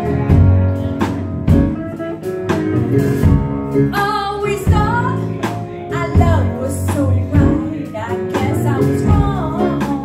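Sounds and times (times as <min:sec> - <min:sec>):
drum kit: 0:00.0 - 0:10.0
electric bass: 0:00.0 - 0:10.0
electric guitar: 0:00.0 - 0:10.0.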